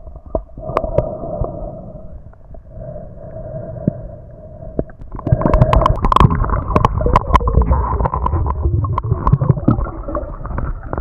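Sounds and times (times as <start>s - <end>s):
muffled underwater noise: 2.8s - 11.0s
splashing and bubbling water: 5.1s - 11.0s.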